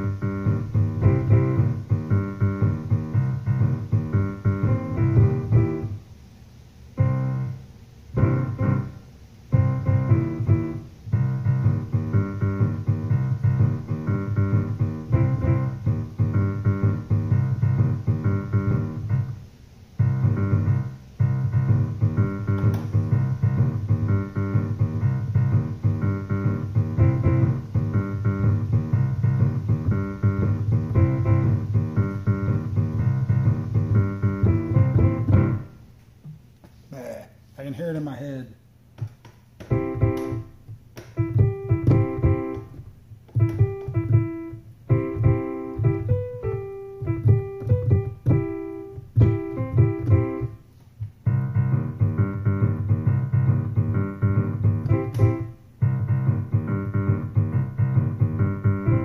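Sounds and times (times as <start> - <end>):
digital piano chords: 0.0 - 36.0, 39.0 - 59.0.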